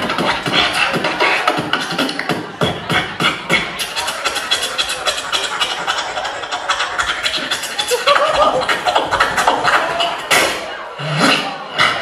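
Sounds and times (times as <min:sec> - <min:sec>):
amplified beatboxing: 0:00.0 - 0:12.0.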